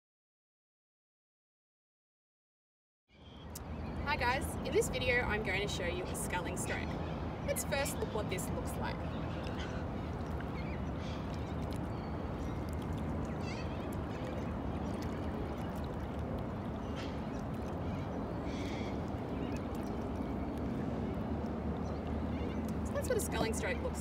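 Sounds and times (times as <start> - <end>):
bird calls: 3.1 - 24.0
steady low rumble: 3.6 - 24.0
paddle swishing water: 7.4 - 24.0.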